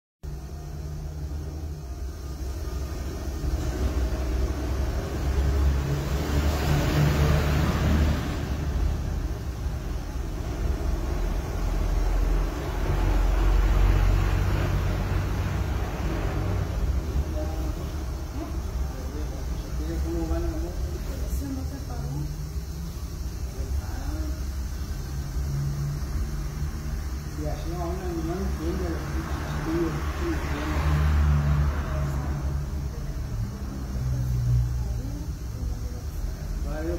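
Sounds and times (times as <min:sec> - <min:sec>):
motor vehicles passing: 0:00.2 - 0:36.9.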